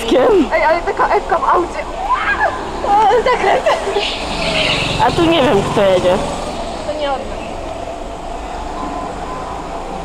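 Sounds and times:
go-kart engine running: 0.0s - 10.0s
voices: 0.0s - 10.0s.

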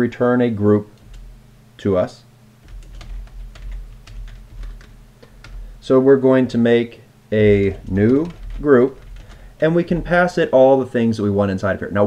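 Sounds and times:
keyboard keystroke clicks: 2.6s - 5.8s, 7.5s - 9.5s.

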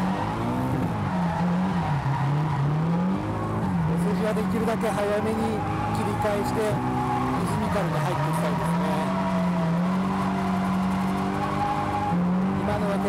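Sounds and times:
car engine at high revs: 0.0s - 13.0s.

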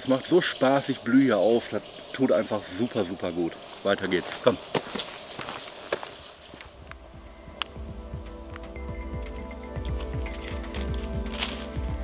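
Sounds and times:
footsteps on forest path: 0.1s - 12.0s
background music with held tones: 6.8s - 12.0s.

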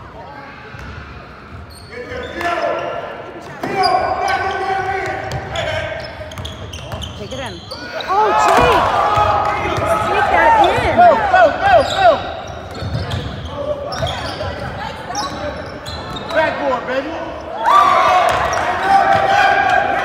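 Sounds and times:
sneakers squeaking: 0.6s - 19.3s
players calling out: 3.6s - 20.0s.

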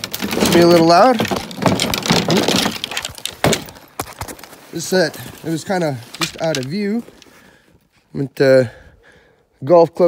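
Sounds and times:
golf clubs clattering in a bag: 0.0s - 3.9s, 4.8s - 7.4s.

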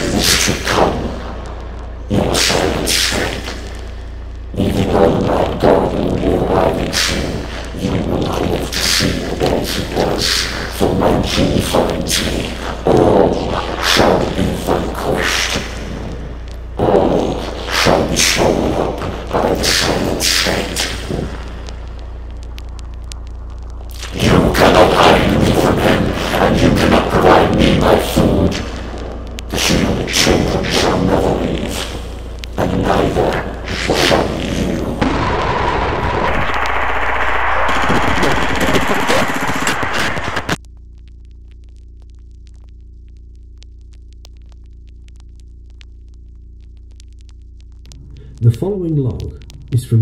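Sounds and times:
heavy distorted thuds: 0.0s - 40.6s, 47.2s - 50.0s
steady low hum: 0.0s - 50.0s
distorted monstrous voice speaking: 2.1s - 3.6s, 4.6s - 16.1s, 16.8s - 21.3s, 47.9s - 50.0s.

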